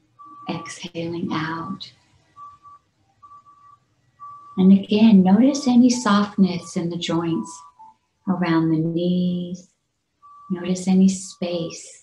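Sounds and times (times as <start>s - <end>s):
faint high-pitched tone pulses: 0.0s - 9.6s, 10.2s - 12.0s.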